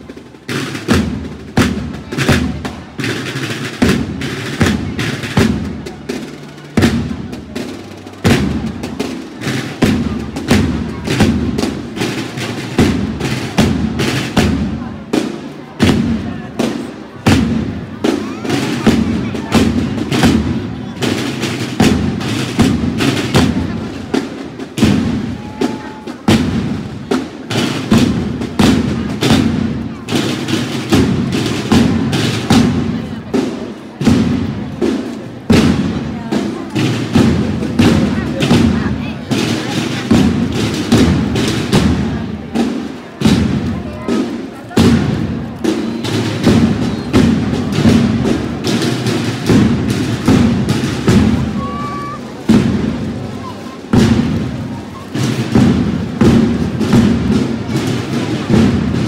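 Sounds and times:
drums beating a slow march: 0:00.0 - 0:59.0.

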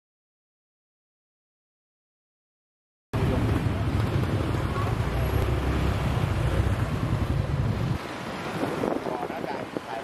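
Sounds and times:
motorcycle engine: 0:03.2 - 0:07.9
traffic noise: 0:03.2 - 0:10.0
wind buffeting microphone: 0:03.7 - 0:10.0.

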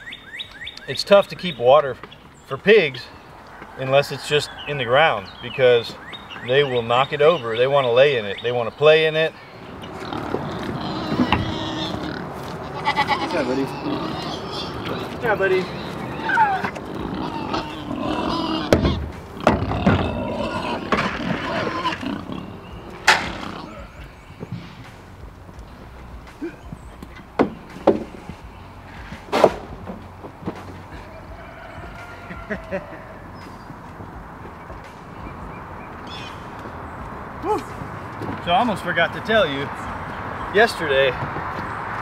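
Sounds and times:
livestock calling: 0:02.7 - 0:24.6, 0:30.9 - 0:33.9
sharp knocks: 0:27.3 - 0:28.4.

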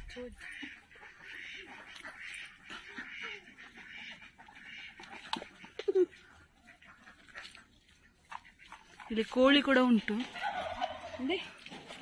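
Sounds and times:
ducks quacking: 0:00.0 - 0:12.0.

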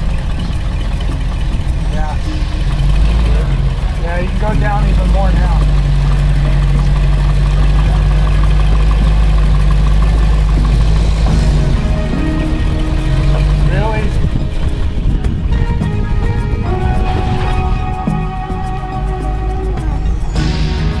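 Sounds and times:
engine low drone: 0:00.0 - 0:21.0
music: 0:00.0 - 0:21.0.

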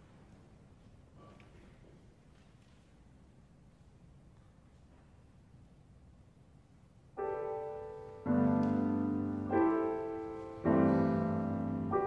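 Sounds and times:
grand piano chords: 0:07.1 - 0:12.0.

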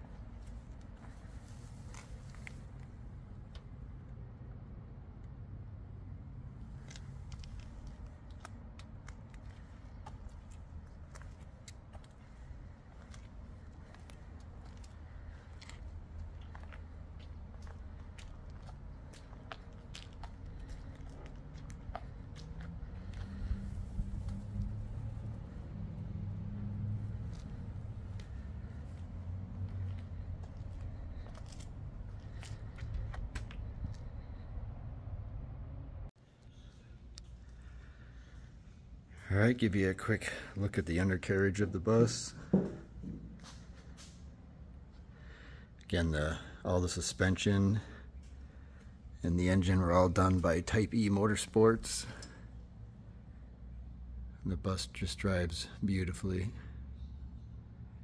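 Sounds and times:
low hum: 0:00.0 - 0:39.5
footsteps on concrete: 0:06.8 - 0:24.8, 0:27.1 - 0:34.2, 0:42.3 - 0:44.2
wind rumble: 0:12.1 - 0:36.1.

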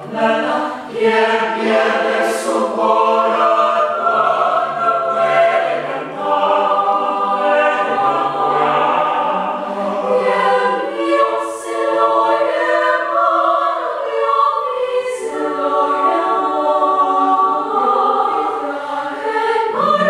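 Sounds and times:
mixed choir singing a cappella: 0:00.0 - 0:20.0.

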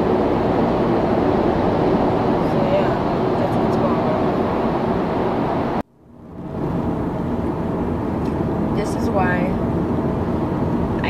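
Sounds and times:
car cabin road and engine noise: 0:00.0 - 0:11.0.

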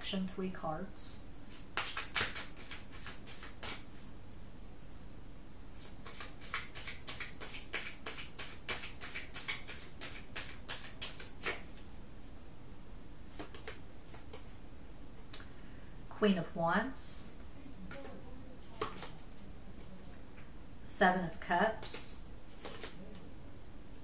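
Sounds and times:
cards being shuffled by hand: 0:01.5 - 0:04.1, 0:05.8 - 0:11.9, 0:13.3 - 0:14.6, 0:17.9 - 0:20.1, 0:21.8 - 0:23.3.

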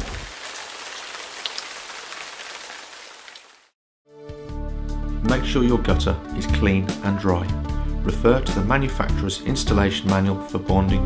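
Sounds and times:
rain falling on a surface: 0:00.0 - 0:03.8.

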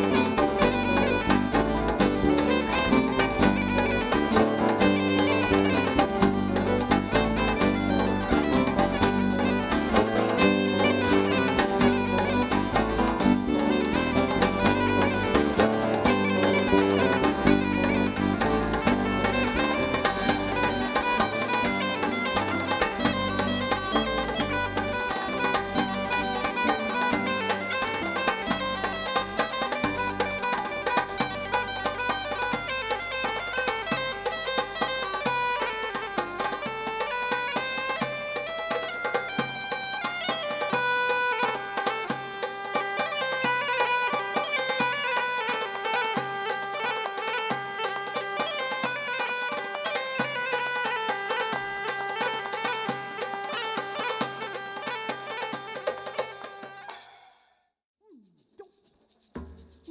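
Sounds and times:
bagpipe playing a quick tune: 0:00.0 - 0:57.6.

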